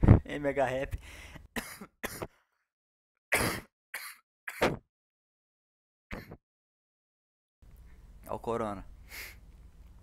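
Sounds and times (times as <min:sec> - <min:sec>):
man coughing: 0:01.6 - 0:02.3.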